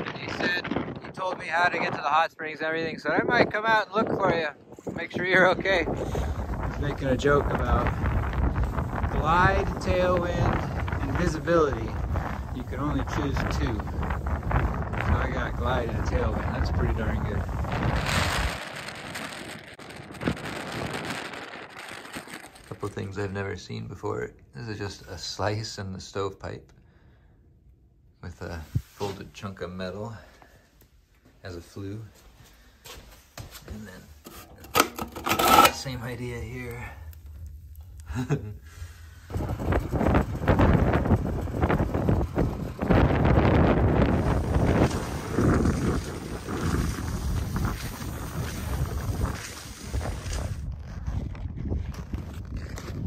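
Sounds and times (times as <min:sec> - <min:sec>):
wind driving snow: 0:00.0 - 0:24.1, 0:28.3 - 0:30.6, 0:35.7 - 0:53.0.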